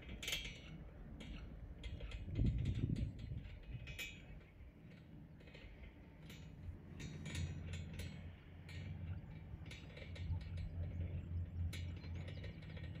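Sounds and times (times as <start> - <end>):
chairlift clicks and clacks: 0.0 - 13.0
chairlift low hum: 0.0 - 13.0.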